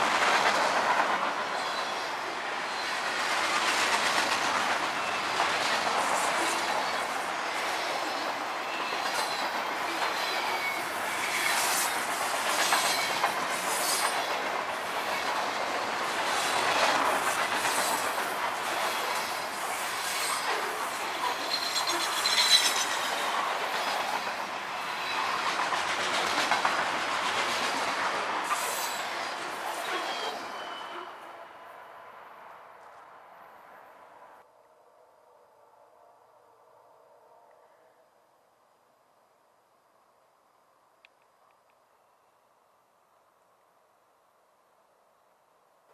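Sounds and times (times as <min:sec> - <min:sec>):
freight train wheels rumbling: 0:00.0 - 0:31.0
wheels clacking over rail joints: 0:08.3 - 0:30.7
faint wheel squeal: 0:21.2 - 0:23.1, 0:29.8 - 0:31.4.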